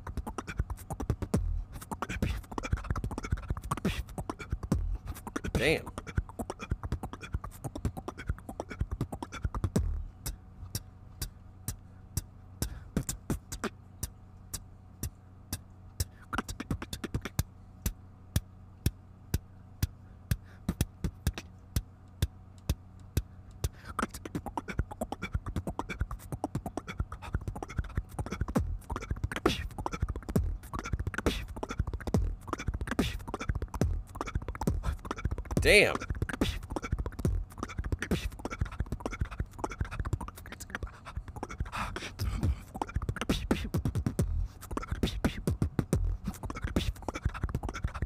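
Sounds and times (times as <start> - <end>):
beatboxing into a microphone: 0.0 - 48.0.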